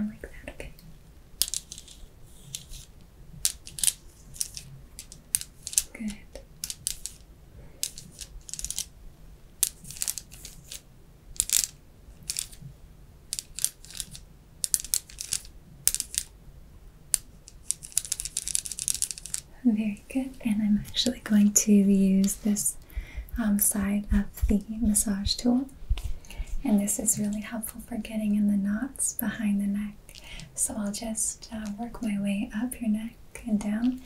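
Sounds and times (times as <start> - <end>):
plastic massage tool scratching: 1.4 - 5.9, 13.3 - 16.3, 17.6 - 19.5.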